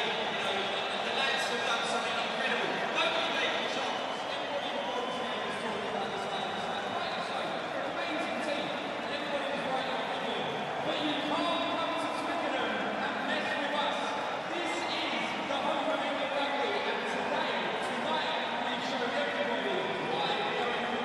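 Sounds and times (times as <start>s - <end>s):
crowd talking and shouting: 0.0s - 21.0s.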